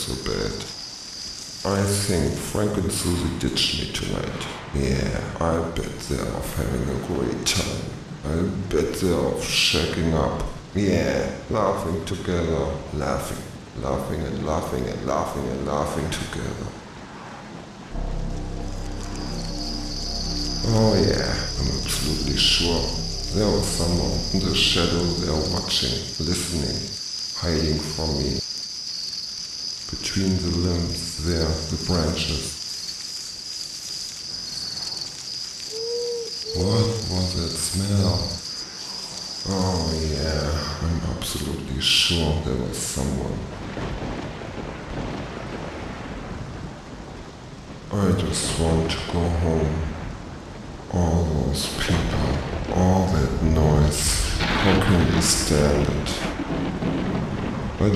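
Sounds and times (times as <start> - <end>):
cricket trill: 0.0 - 8.2, 15.8 - 46.1, 51.7 - 57.8
rushing noise with low rumble: 1.4 - 10.8, 12.2 - 28.5
low droning hum: 17.9 - 25.6.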